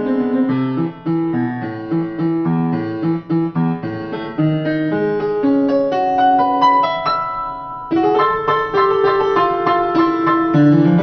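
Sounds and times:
solo upright piano: 0.0 - 11.0.

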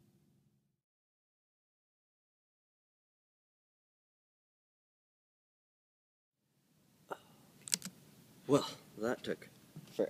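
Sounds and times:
quick clicks: 7.6 - 8.0.

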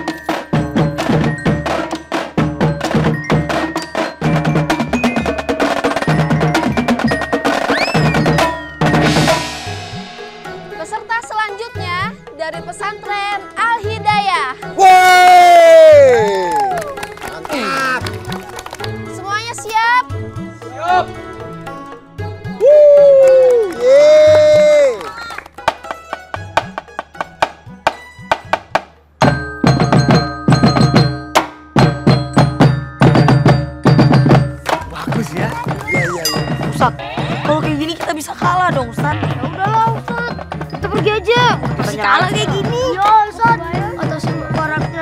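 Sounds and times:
marching drum band: 0.0 - 12.0, 25.6 - 45.0
person shouting a cheer: 14.8 - 18.0, 22.6 - 25.3.

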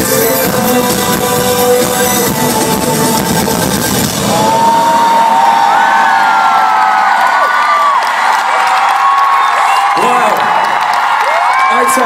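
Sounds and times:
electronic music: 0.0 - 5.9
crowd cheering: 4.1 - 12.0.

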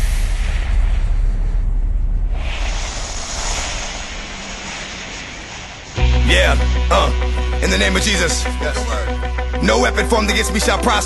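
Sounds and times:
broad rushing noise: 2.2 - 7.5
hip hop beat: 6.0 - 11.0.

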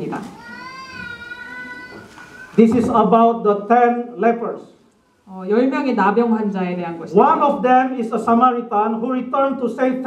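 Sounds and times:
high-pitched drawn-out cry: 0.4 - 2.6.

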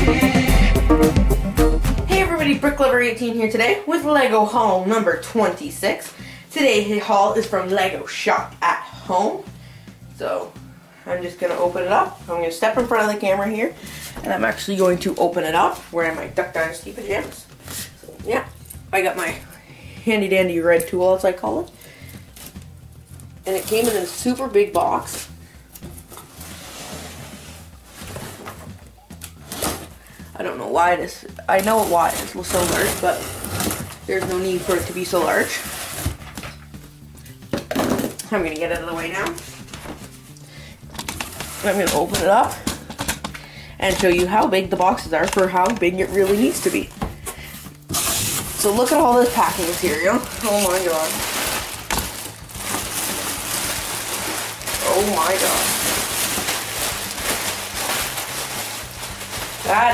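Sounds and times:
packing tape scraping and rustling: 21.8 - 30.1, 31.5 - 37.4, 38.9 - 59.9
plastic air pillows crinkling: 31.4 - 36.4, 40.9 - 59.9
box cutter cutting cardboard: 47.9 - 48.6.

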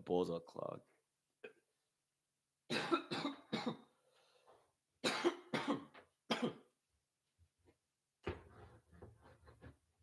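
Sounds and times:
man coughing hard: 2.7 - 3.9, 5.0 - 6.7.

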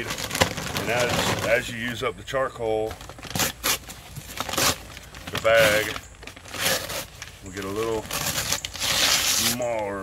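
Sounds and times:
paper bag being torn: 0.0 - 1.9, 2.9 - 10.0.

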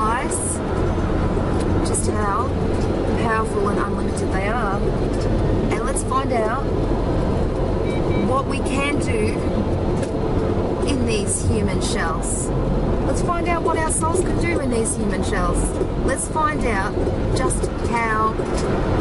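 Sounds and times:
car cabin rumble: 0.0 - 19.0.

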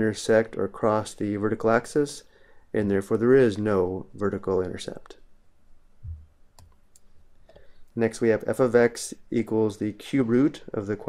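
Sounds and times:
short low thump: 6.0 - 6.3.

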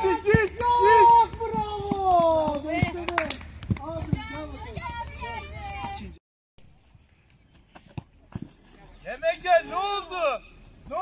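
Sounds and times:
children chattering and calling: 4.1 - 6.2.

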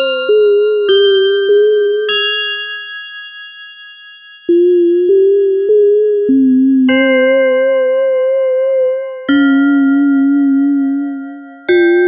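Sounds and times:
bell-like synth chime: 0.0 - 5.8, 9.2 - 12.0
low sustained synth notes: 4.5 - 12.0.

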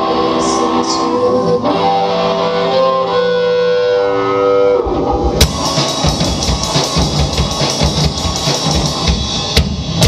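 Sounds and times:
electric guitar notes ringing: 0.0 - 9.5
rock band playing: 0.0 - 10.0
cymbal crash: 5.1 - 10.0.

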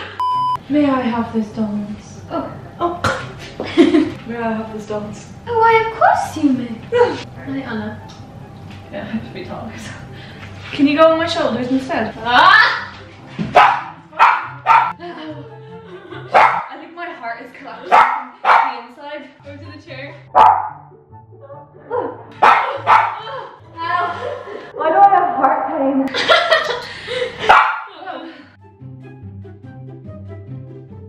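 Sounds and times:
young woman laughing: 3.6 - 4.2, 26.1 - 28.4
background music with bass line: 12.1 - 16.7, 28.6 - 31.0.

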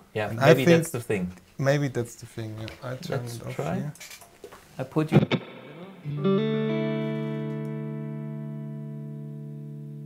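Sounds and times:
electric guitar chord ringing: 5.2 - 10.0.

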